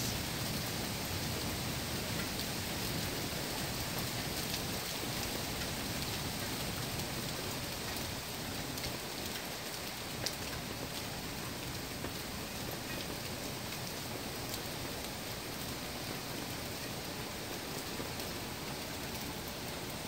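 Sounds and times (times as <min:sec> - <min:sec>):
heavy rain pouring: 0:00.0 - 0:20.0.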